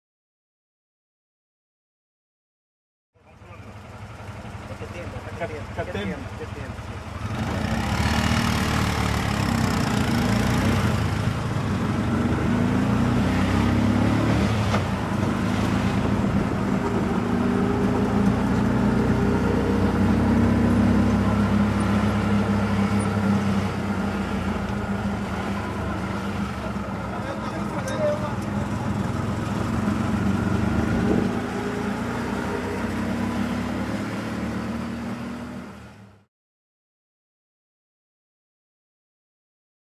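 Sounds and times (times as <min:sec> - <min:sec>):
auto-rickshaw engine running: 0:03.2 - 0:36.3.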